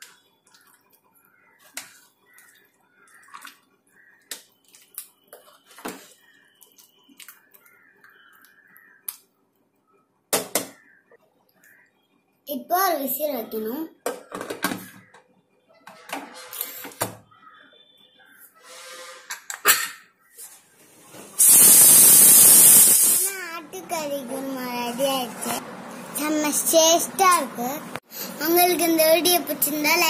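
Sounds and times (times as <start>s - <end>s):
pressure cooker steam hissing: 21.4s - 23.4s.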